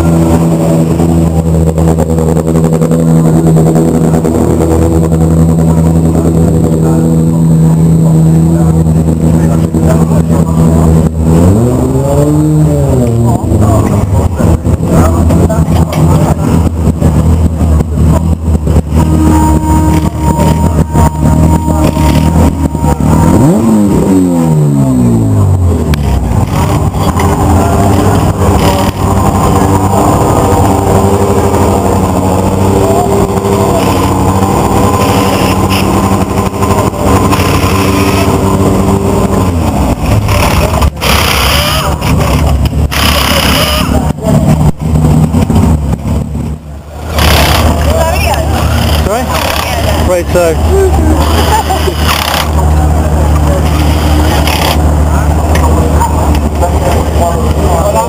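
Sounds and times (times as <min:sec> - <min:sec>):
car engines idling: 0:00.0 - 0:58.0
engine revving blip: 0:17.8 - 0:45.8.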